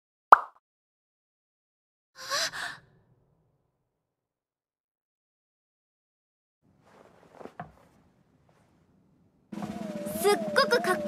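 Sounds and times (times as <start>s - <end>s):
sharp pop sound effect: 0.3s - 0.6s
girl gasping: 2.2s - 2.8s.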